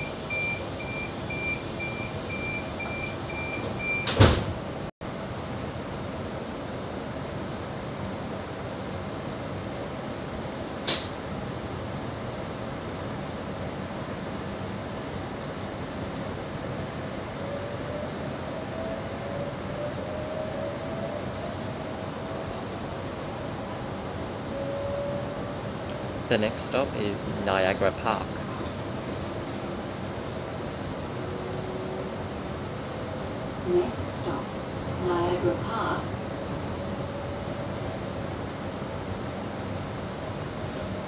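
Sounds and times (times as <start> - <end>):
rapid high warning beeps: 0.0 - 4.1
train carriage running noise: 0.0 - 41.0
train doors shutting thud: 2.7 - 4.8, 10.8 - 11.2
sharp click: 10.8 - 11.2.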